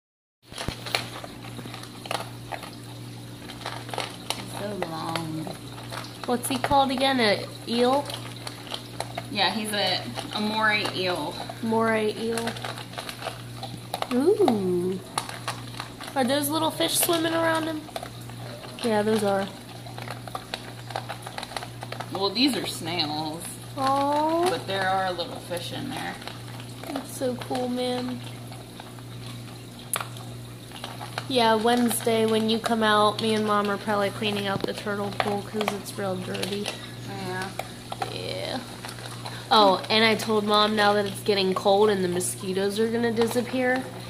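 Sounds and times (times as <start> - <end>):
aquarium filter humming: 0.4 - 44.0
bubbling clicks: 0.4 - 44.0.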